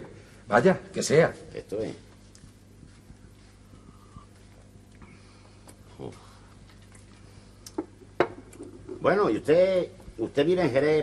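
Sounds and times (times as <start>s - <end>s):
faint steady hum: 0.0s - 11.0s
glass knocking on wooden table: 8.2s - 8.4s.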